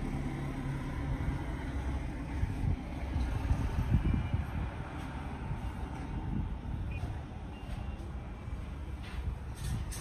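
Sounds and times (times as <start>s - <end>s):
diesel engine rumbling: 0.0s - 10.0s.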